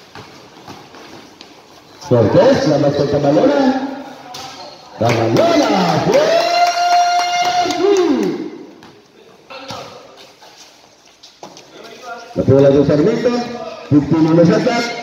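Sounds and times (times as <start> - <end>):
court noise: 0.0 - 10.6.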